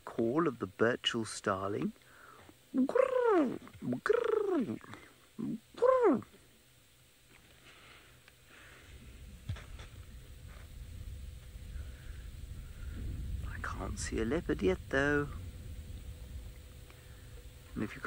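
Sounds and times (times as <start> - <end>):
low rumble: 8.6 - 18.0.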